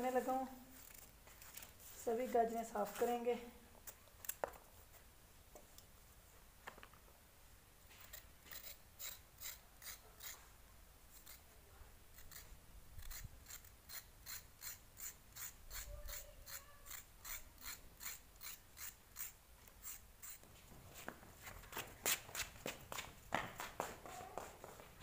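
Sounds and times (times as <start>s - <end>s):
knife scraping carrot skin: 0.7s - 3.2s, 8.0s - 10.5s, 11.1s - 11.5s, 12.1s - 20.4s.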